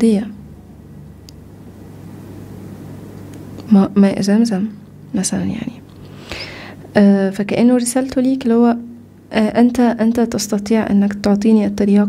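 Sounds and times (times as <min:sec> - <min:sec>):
steady low room hum: 0:00.0 - 0:12.0.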